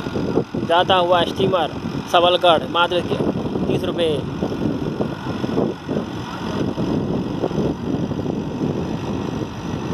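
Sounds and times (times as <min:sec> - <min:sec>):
ferry boat engine running: 0:00.0 - 0:09.9.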